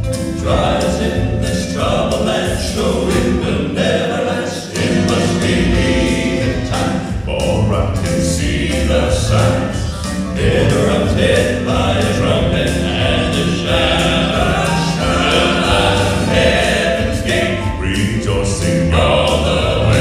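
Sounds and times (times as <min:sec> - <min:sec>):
male vocal quartet singing: 0:00.0 - 0:20.0
piano accompaniment: 0:00.0 - 0:20.0.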